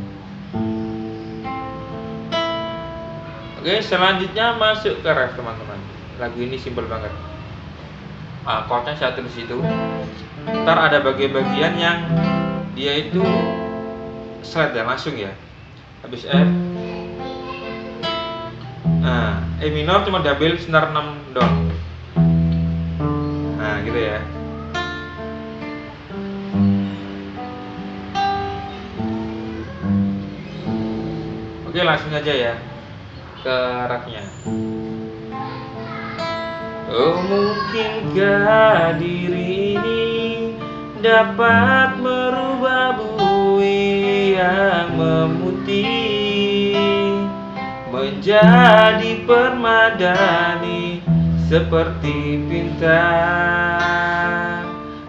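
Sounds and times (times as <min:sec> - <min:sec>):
acoustic guitar fingerpicked: 0:00.0 - 0:05.8, 0:08.9 - 0:15.0, 0:15.6 - 0:55.0.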